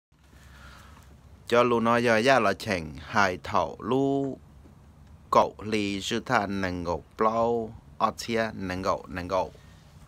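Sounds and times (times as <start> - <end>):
faint low background noise: 0.2 - 10.0
person speaking: 1.5 - 4.5, 5.2 - 9.6.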